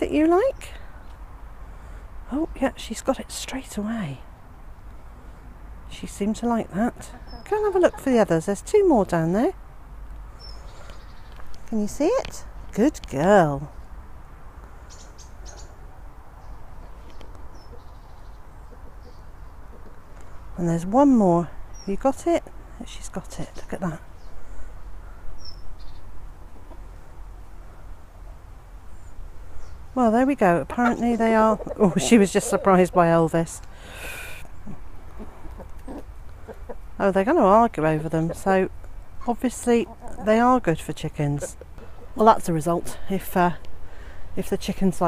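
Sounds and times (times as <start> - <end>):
outdoor background noise: 0.0 - 45.0
chickens clucking: 6.4 - 8.6, 16.9 - 20.4, 26.4 - 27.0, 30.4 - 33.7, 34.4 - 42.9.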